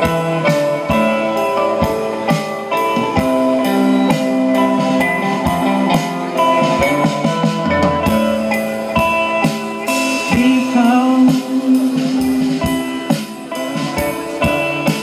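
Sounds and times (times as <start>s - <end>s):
dream-pop band playing: 0.0s - 15.0s
drum kit steady beat: 0.0s - 15.0s
guitars ringing: 0.0s - 15.0s.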